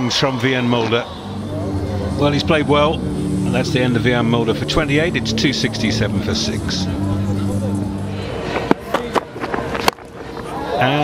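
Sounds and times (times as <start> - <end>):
stadium background: 0.0 - 11.0.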